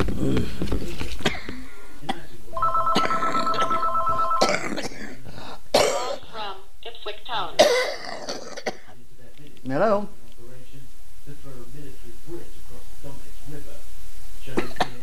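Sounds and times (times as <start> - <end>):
telephone ringing: 2.6 - 4.8.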